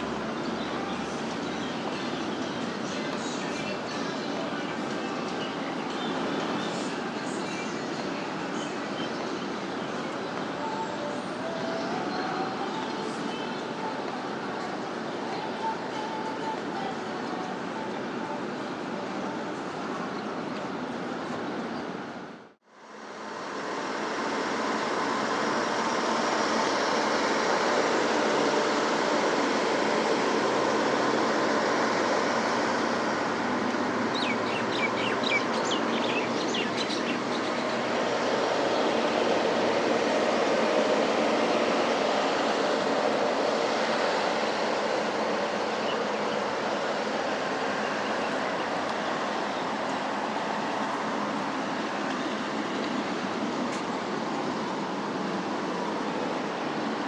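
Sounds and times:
traffic passing: 0.0 - 57.0
bird chirping: 34.1 - 37.9.

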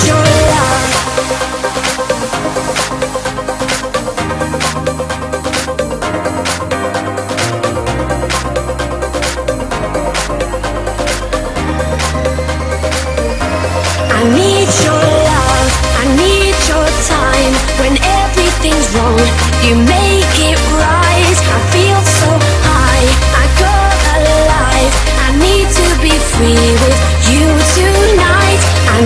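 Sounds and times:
electronic dance music: 0.0 - 29.0.

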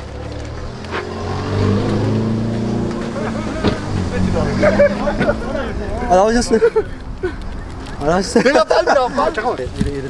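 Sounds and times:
voices: 1.9 - 10.0.

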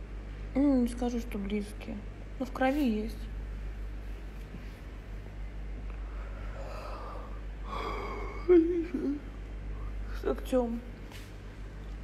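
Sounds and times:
woman yawning: 6.6 - 8.8.

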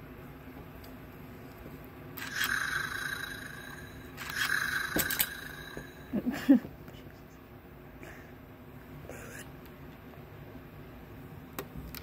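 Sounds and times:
electronic toy tone over hiss: 2.2 - 6.0.

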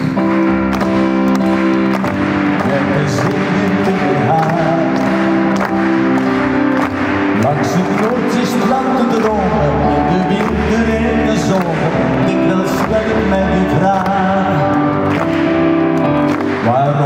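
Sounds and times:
ballad backing music over pa: 0.0 - 17.0.

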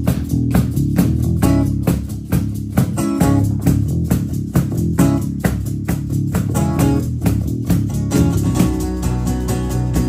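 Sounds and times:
acoustic guitars strumming: 0.0 - 10.0
cajon beat: 0.0 - 10.0.

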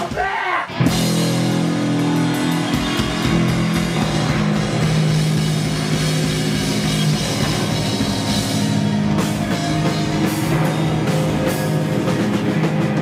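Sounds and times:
drum kit beat: 0.0 - 13.0
electric guitars holding chords: 0.7 - 13.0.

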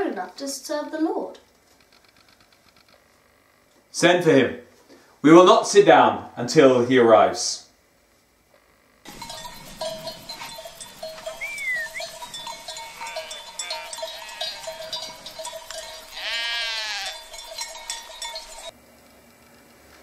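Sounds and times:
sheep bleating: 9.1 - 18.7.

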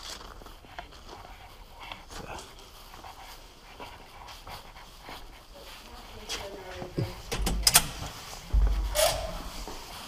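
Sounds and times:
soft footsteps on concrete: 0.0 - 7.3, 8.0 - 10.0
dog panting: 0.2 - 7.3.

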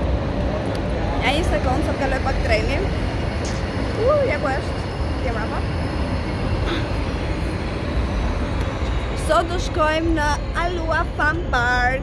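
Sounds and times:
road traffic rumble: 0.0 - 12.0
woman's voice: 9.2 - 12.0.

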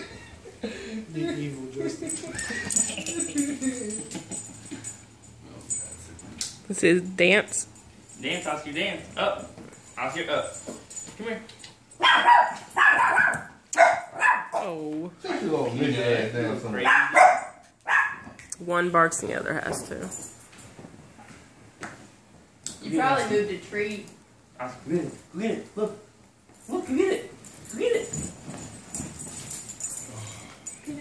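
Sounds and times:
dogs barking: 12.0 - 14.6, 16.8 - 18.4.

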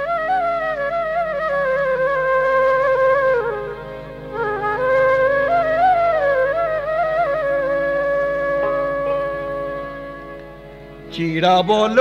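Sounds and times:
flute holding long note: 0.0 - 11.2
low pulsing accompaniment: 0.0 - 12.0.

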